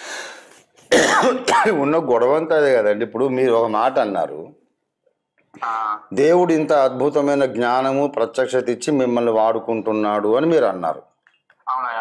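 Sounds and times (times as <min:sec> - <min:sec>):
man clearing throat: 0:00.9 - 0:01.8.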